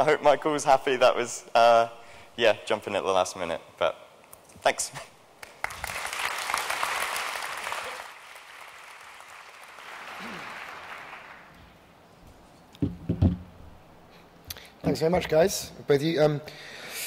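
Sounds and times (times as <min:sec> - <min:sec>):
audience applauding: 0:05.4 - 0:11.6.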